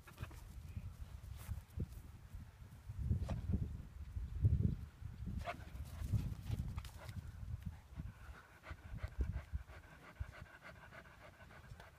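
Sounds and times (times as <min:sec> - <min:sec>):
dog panting: 0:07.0 - 0:11.9.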